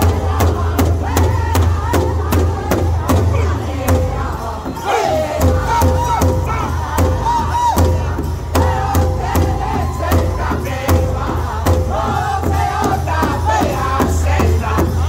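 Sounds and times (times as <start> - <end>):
large drum steady beat: 0.0 - 15.0
men singing in high voices: 0.0 - 15.0.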